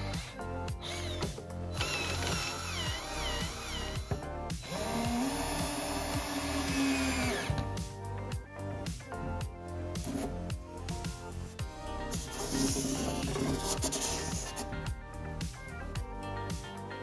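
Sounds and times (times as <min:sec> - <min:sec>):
cordless drill whine: 0:00.0 - 0:07.6
background music with beat: 0:00.0 - 0:17.0.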